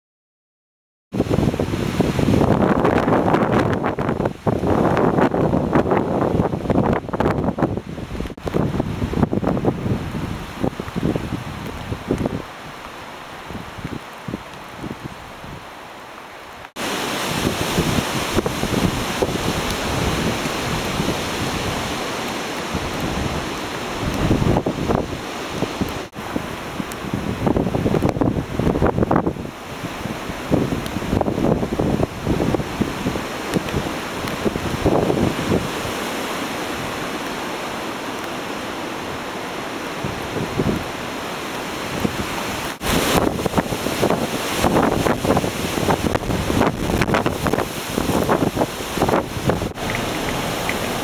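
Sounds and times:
wind buffeting microphone: 0:01.2 - 0:12.8, 0:16.8 - 0:37.1, 0:40.0 - 0:41.0, 0:41.8 - 0:51.0
wind gusting through pine trees: 0:01.2 - 0:51.0.

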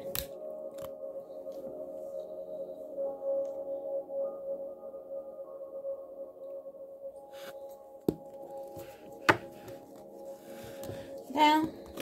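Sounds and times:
ambient background music: 0:00.0 - 0:12.0.

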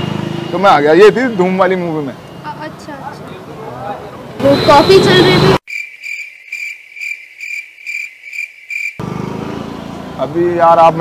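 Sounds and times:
crickets chirping: 0:05.6 - 0:09.0.

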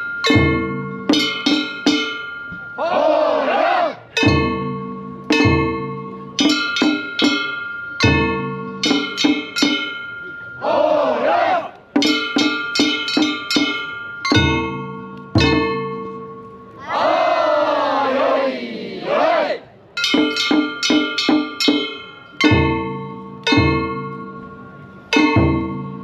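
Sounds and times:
drum beats: 0:00.2 - 0:02.8, 0:04.2 - 0:10.0, 0:11.9 - 0:16.2, 0:20.0 - 0:24.2, 0:25.2 - 0:26.0
men shouting drawn-out: 0:02.8 - 0:04.0, 0:10.6 - 0:11.7, 0:16.9 - 0:19.6.

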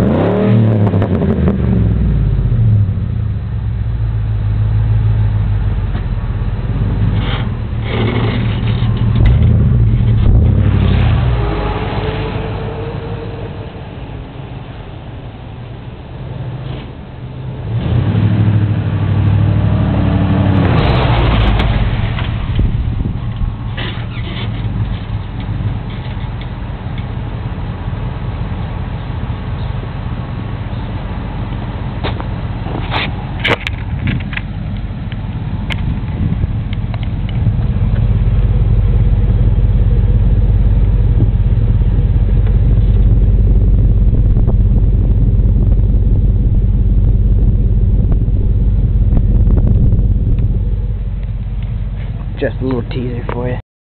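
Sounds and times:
pickup truck engine revving and idling: 0:00.0 - 0:53.6.

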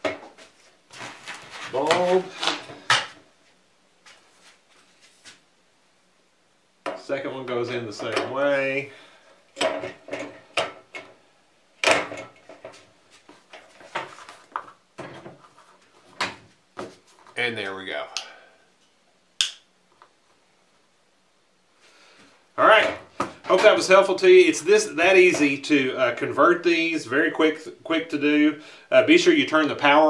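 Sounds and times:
man speaking: 0:01.6 - 0:02.4, 0:07.0 - 0:08.9, 0:17.4 - 0:18.4, 0:22.6 - 0:30.0
tubes clicking into sockets: 0:19.4 - 0:19.7.

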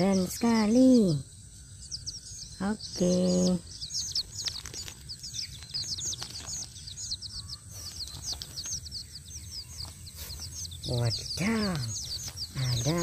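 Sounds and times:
chicks peeping: 0:00.0 - 0:13.0.

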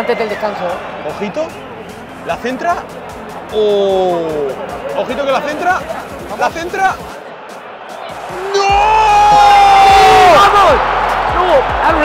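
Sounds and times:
crowd murmur: 0:02.8 - 0:08.7
crowd roaring: 0:07.0 - 0:12.0
long held shout: 0:08.3 - 0:10.8.

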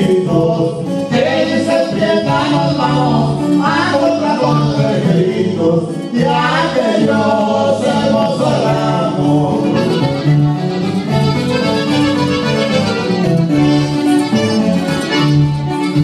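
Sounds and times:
accordion melody: 0:00.0 - 0:16.0
bass line: 0:00.0 - 0:16.0.

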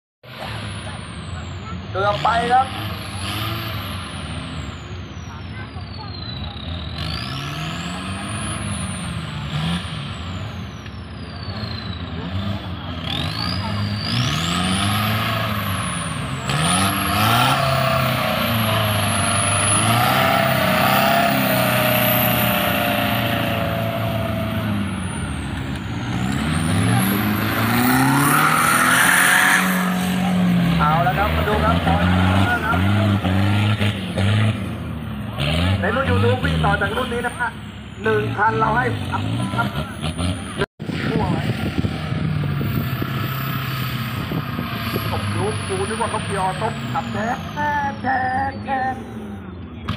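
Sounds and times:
truck engines revving: 0:00.2 - 0:49.9.

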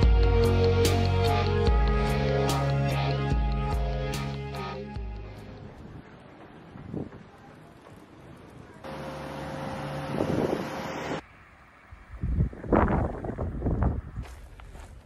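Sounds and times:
outdoor background sound: 0:00.0 - 0:15.0
wind rumbling on microphone: 0:05.6 - 0:08.6, 0:10.0 - 0:15.0.

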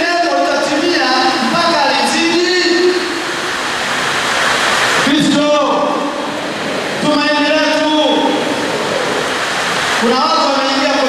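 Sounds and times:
man speaking: 0:00.0 - 0:03.1, 0:05.1 - 0:06.1, 0:07.0 - 0:08.5, 0:10.0 - 0:11.0
loud steady hiss: 0:00.0 - 0:11.0.

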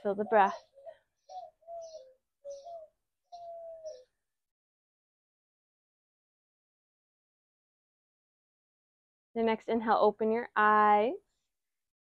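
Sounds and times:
dove cooing: 0:00.0 - 0:04.2.

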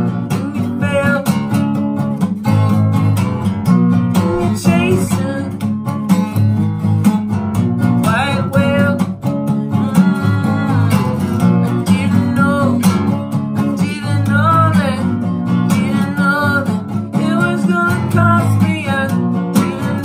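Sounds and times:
man singing: 0:00.0 - 0:01.6, 0:04.2 - 0:05.8, 0:08.0 - 0:09.1, 0:11.8 - 0:20.0
acoustic guitar strumming: 0:00.0 - 0:20.0.

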